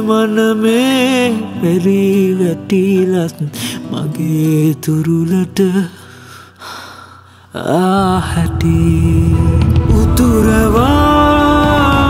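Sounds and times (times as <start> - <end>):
man singing: 0.0 - 6.3, 7.5 - 12.0
man breathing in: 6.0 - 7.6
soft sustained musical backing: 7.6 - 12.0.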